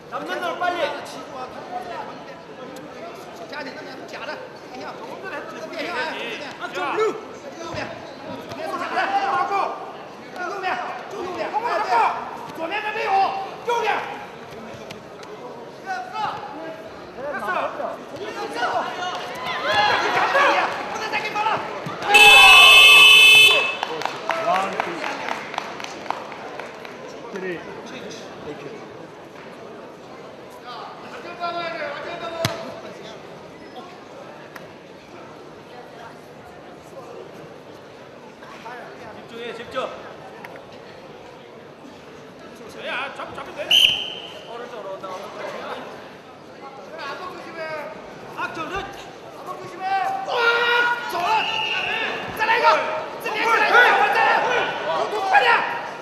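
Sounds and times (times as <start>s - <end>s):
voices calling out in hall: 0.0s - 26.6s, 42.6s - 56.0s
shouting voices: 18.4s - 23.9s
referee's whistle: 22.1s - 23.8s, 43.7s - 44.5s, 51.2s - 52.2s
loud electronic buzzer: 22.2s - 23.8s.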